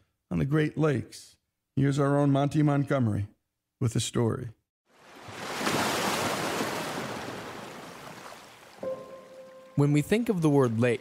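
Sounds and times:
wave crashing: 5.0 - 9.8
held musical note: 8.8 - 10.8.

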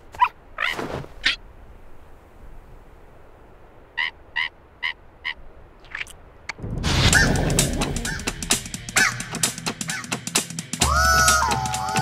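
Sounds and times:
cartoon seabird calls: 4.0 - 6.1, 8.0 - 10.2, 10.8 - 12.0
cartoon seabird squawks: 4.0 - 6.1, 7.0 - 7.4, 8.0 - 8.4, 9.0 - 10.2.

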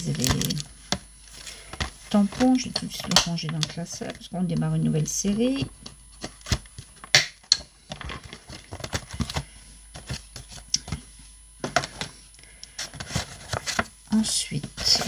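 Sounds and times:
paper and packaging rustling: 0.0 - 0.7, 1.3 - 4.3, 7.9 - 11.0, 12.7 - 15.0.

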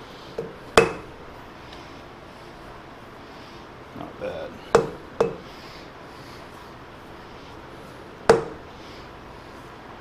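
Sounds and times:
hammer tapping steel bar: 4.7 - 5.4, 8.3 - 8.6.

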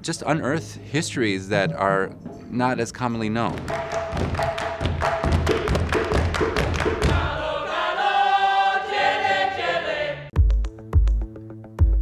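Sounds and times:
hand claps and percussion: 3.4 - 7.4
group singing together: 5.6 - 10.3
electronic music with bass beat: 10.4 - 12.0.

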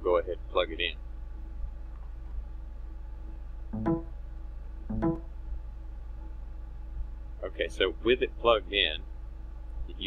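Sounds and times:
steady low hum: 0.0 - 10.0
computer device-connect chimes: 3.8 - 4.2, 4.9 - 5.3.

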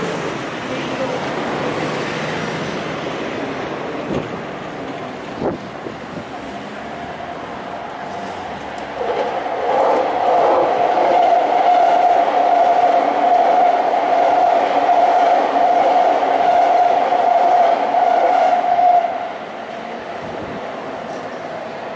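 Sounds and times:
electric train whine: 0.0 - 21.9
wheel-on-rail noise: 0.0 - 21.9.

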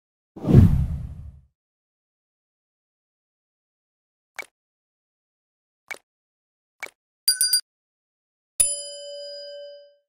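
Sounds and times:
deep whoosh sound effect: 0.4 - 1.4.

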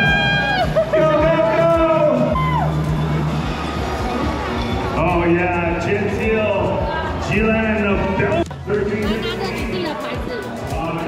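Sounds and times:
crowd shouting and cheering: 0.0 - 11.0
loud music with kick-drum beat: 0.0 - 11.0.

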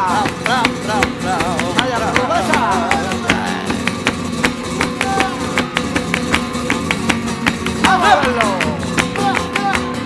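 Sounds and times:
person singing: 0.0 - 4.0, 4.7 - 5.7, 7.8 - 10.0
acoustic guitar: 0.0 - 10.0.

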